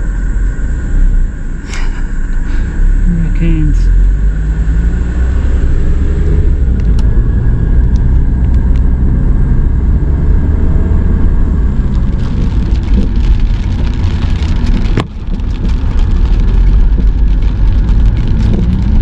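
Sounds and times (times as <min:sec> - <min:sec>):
car engine and road rumble: 0:00.0 - 0:19.0
raindrops ticking on windshield: 0:11.2 - 0:19.0.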